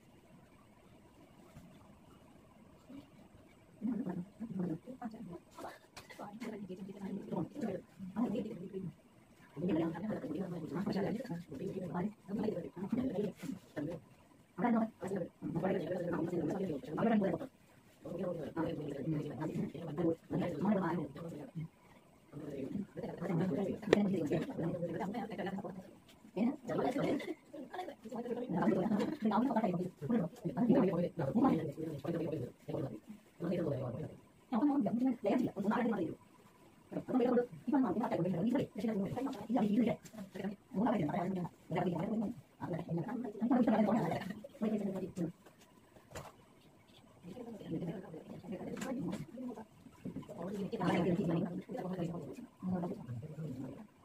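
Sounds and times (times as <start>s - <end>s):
woman speaking: 3.8s - 14.0s, 14.6s - 21.7s, 22.3s - 36.3s, 36.9s - 45.5s, 47.2s - 53.9s.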